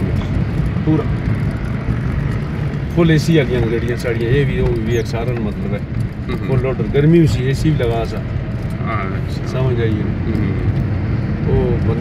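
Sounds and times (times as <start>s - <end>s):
car engine and road noise: 0.0s - 12.0s.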